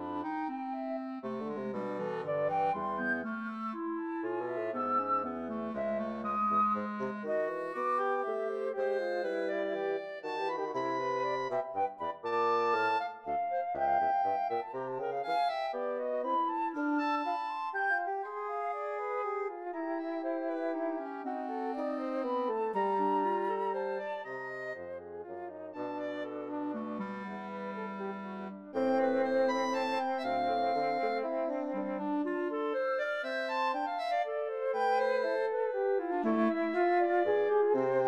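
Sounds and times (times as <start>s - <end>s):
woodwind trio playing: 0.0s - 38.0s.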